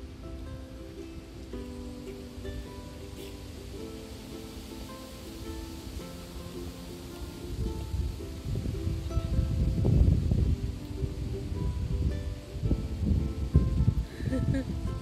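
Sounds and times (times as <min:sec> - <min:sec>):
gentle background music: 0:00.0 - 0:15.0
wind buffeting microphone: 0:00.0 - 0:15.0.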